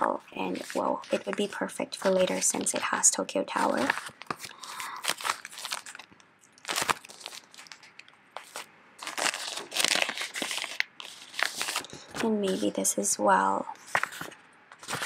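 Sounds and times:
plastic sleeves crinkling: 0.0 - 13.1, 13.8 - 15.0.

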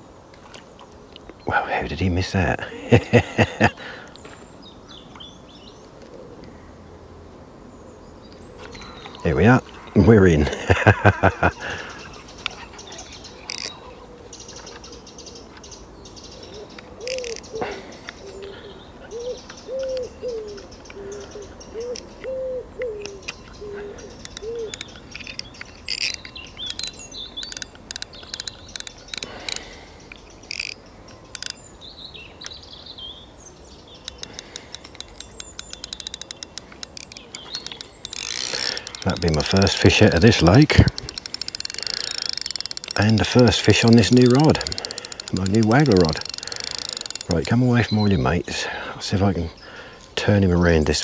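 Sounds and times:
small birds chirping faintly: 0.0 - 51.0
scattered clicks: 8.6 - 13.8, 16.7 - 18.2, 24.2 - 31.6, 34.0 - 48.2
fishing reel ticking: 11.9 - 13.8, 17.0 - 17.5, 24.1 - 31.6, 34.0 - 48.1
pigeon cooing: 16.5 - 24.8.

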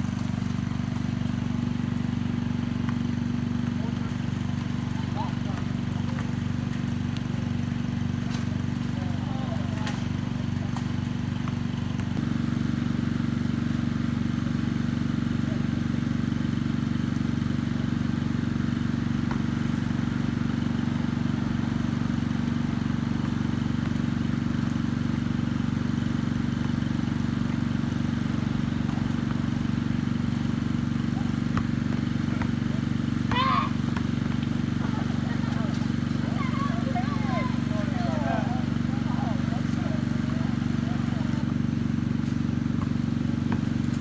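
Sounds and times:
low engine drone: 0.0 - 44.0.

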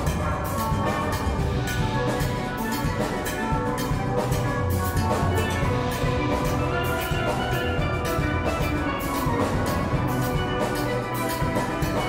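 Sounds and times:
drum kit cymbal beat: 0.0 - 12.0
steel band playing calypso: 0.0 - 12.0.

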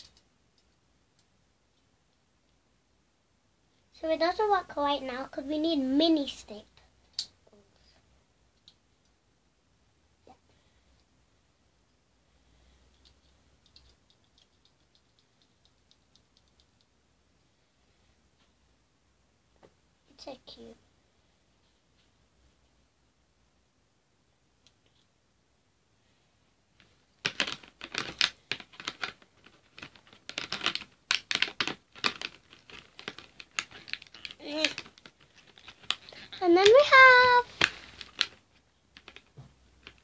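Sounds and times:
plastic pieces clicking and rattling: 27.2 - 40.0.

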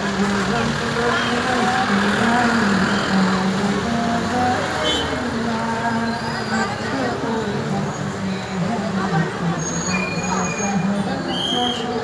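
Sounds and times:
vehicle and street noise: 0.0 - 12.0.

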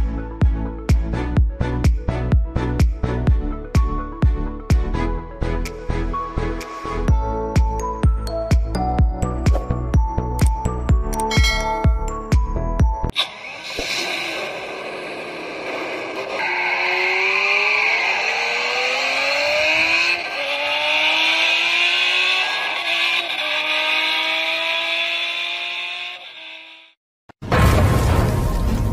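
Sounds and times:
car engine accelerating: 13.1 - 27.0.

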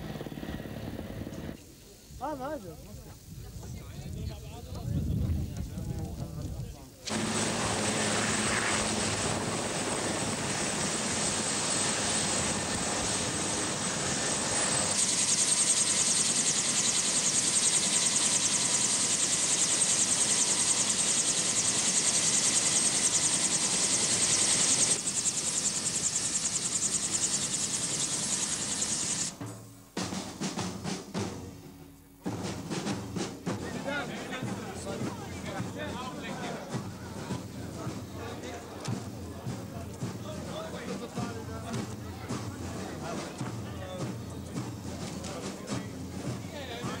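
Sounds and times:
helicopter rotor chop: 0.0 - 1.6, 5.7 - 29.4, 33.6 - 47.0
helicopter turbine whine: 0.0 - 1.7, 7.1 - 29.5.

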